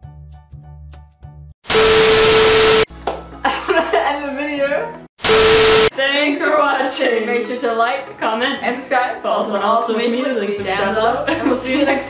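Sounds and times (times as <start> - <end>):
static burst with steady tone: 1.7 - 2.9, 5.2 - 5.9
soft plucked background music: 3.0 - 5.1, 6.0 - 12.0.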